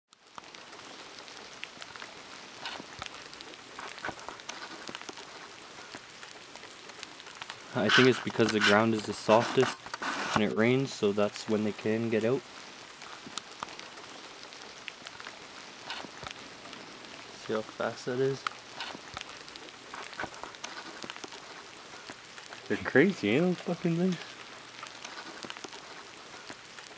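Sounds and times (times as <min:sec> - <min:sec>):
raindrops ticking close by: 0:00.1 - 0:26.9
steady rain falling: 0:00.1 - 0:26.9.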